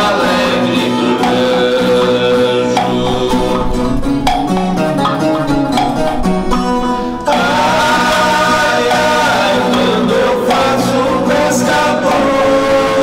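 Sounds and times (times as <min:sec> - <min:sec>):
men singing together: 0:00.0 - 0:05.0, 0:06.9 - 0:13.0
plucked guitars playing: 0:00.0 - 0:13.0.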